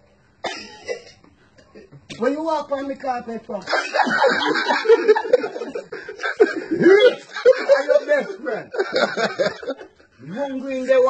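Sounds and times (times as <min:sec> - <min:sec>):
person coughing: 0:00.4 - 0:01.9.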